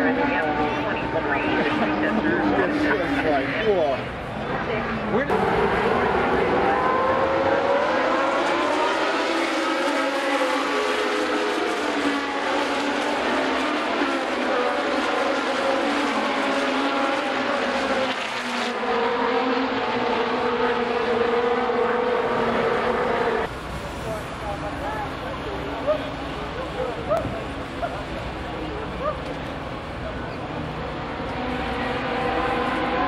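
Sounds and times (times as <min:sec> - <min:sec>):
race car engines at high revs: 0:00.0 - 0:23.5, 0:24.2 - 0:33.0.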